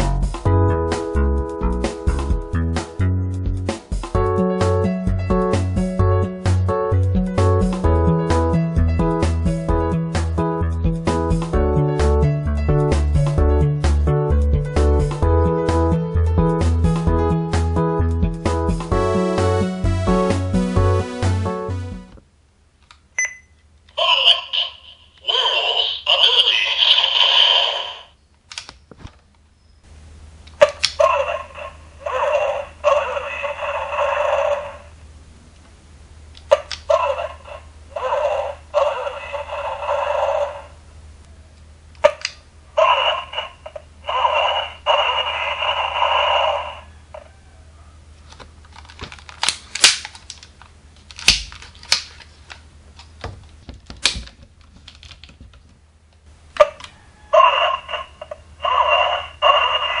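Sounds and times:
tinny recorded voice from toy speaker: 23.9s - 28.1s, 30.6s - 34.9s, 36.5s - 40.8s, 42.1s - 47.3s, 56.6s - 60.0s
plastic toy parts clicking: 48.3s - 52.6s.

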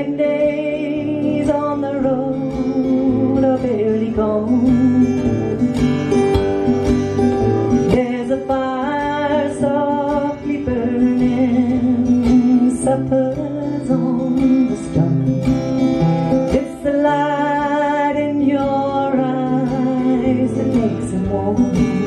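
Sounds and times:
acoustic guitar strumming: 0.0s - 22.0s
woman singing: 0.0s - 22.0s.

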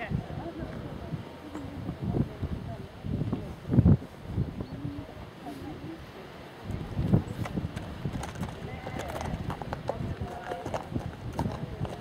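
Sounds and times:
horse hooves thudding on grass: 6.7s - 12.0s.

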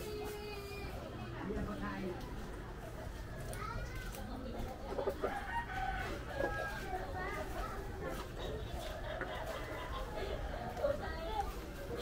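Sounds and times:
rooster crowing: 5.3s - 6.9s.

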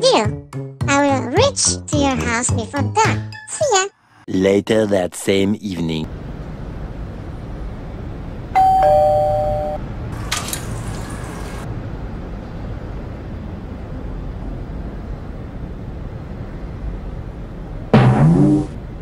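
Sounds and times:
low background hum: 4.3s - 19.0s
two-note doorbell chime: 8.6s - 9.8s.

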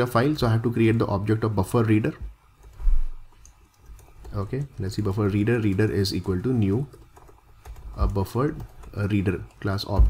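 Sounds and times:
computer keyboard typing: 2.5s - 10.0s.

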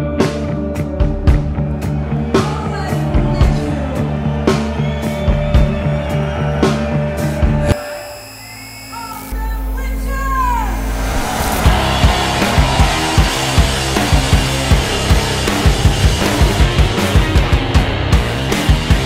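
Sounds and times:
heavy rock band playing: 0.0s - 7.8s, 10.7s - 19.0s
low drone: 7.8s - 16.6s.

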